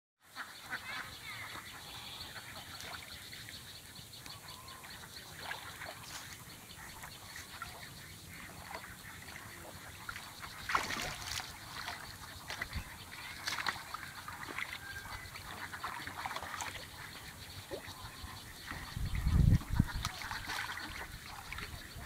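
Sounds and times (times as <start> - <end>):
birds calling and chirping: 0.4 - 22.0.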